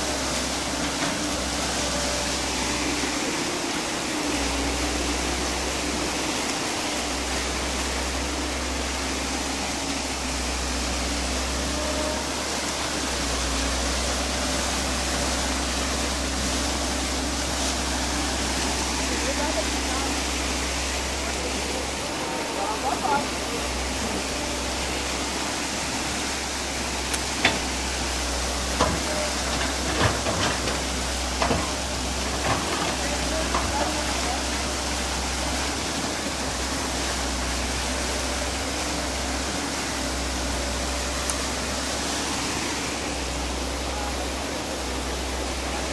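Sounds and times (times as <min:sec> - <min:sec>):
water rushing: 0:00.0 - 0:45.9
faint voices: 0:15.4 - 0:26.2, 0:28.6 - 0:35.9, 0:43.2 - 0:45.9.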